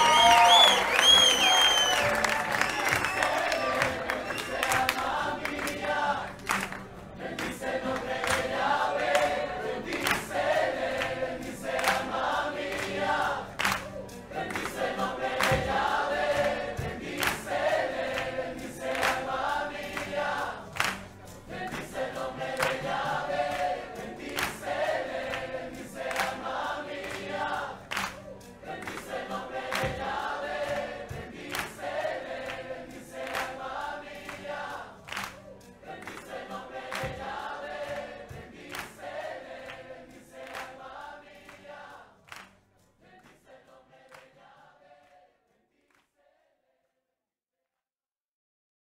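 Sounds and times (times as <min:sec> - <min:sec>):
choir singing a refrain: 0:00.0 - 0:46.7
band playing a steady beat: 0:13.9 - 0:18.1, 0:27.2 - 0:32.1.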